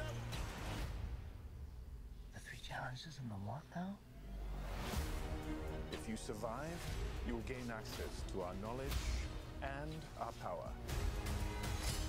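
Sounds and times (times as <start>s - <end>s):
person whispering: 2.3s - 4.0s.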